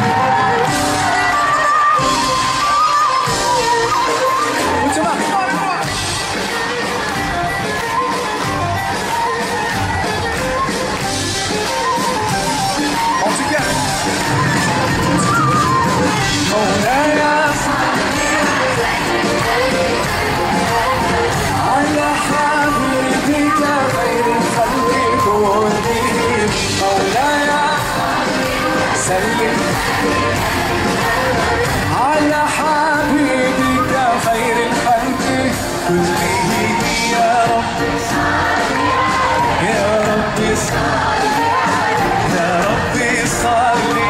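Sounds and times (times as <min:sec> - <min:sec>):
crowd murmur: 0:00.0 - 0:44.0
live band music: 0:00.0 - 0:44.0
person singing: 0:15.0 - 0:44.0.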